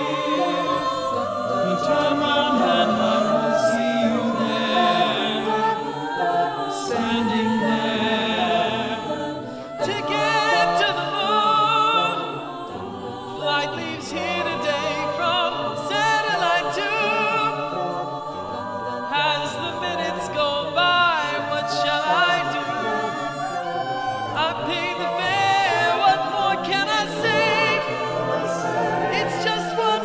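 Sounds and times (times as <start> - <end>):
choir singing a cappella: 0.0 - 30.0.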